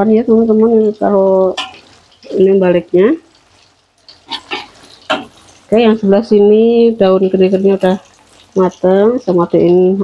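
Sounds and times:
fish frying in oil: 0.0 - 10.0
metal spatula scraping: 1.6 - 2.3, 3.5 - 5.6.

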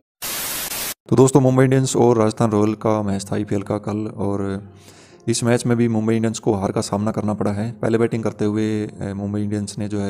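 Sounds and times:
white-noise static burst: 0.2 - 1.0.

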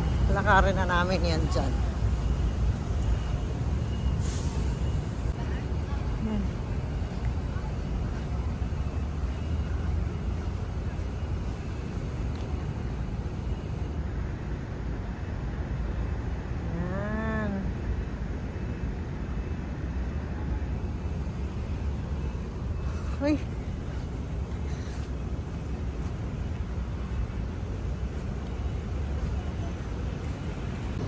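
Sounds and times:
distant traffic rumble: 0.0 - 31.0.

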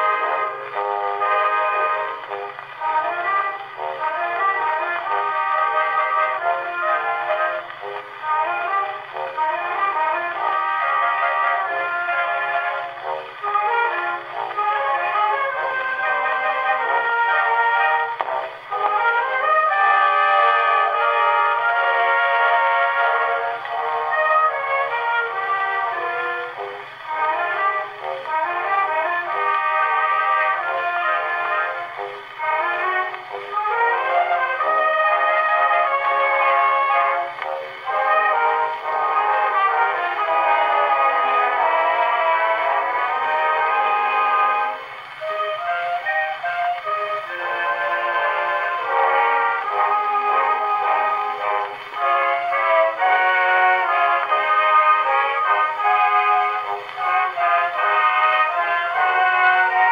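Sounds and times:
orchestral waltz on a gramophone: 0.0 - 59.9.

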